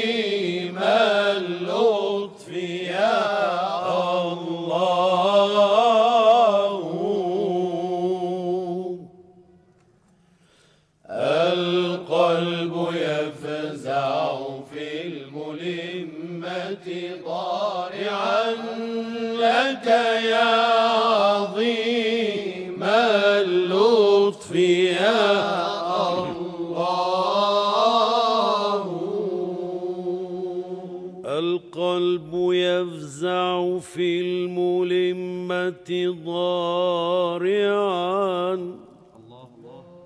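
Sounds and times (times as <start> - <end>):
person singing ornamented chant: 0.0 - 9.6, 11.0 - 40.0.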